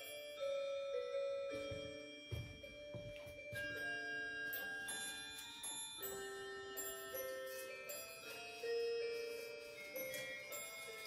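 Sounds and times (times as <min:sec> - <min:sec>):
ringing bell-like music: 0:00.0 - 0:11.0.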